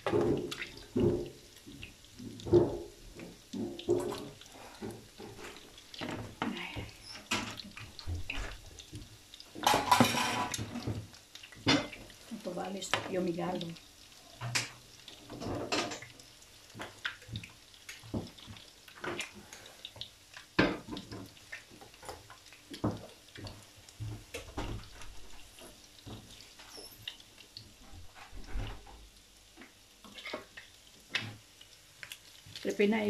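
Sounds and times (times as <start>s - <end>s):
oil crackling and popping: 0.0s - 33.0s.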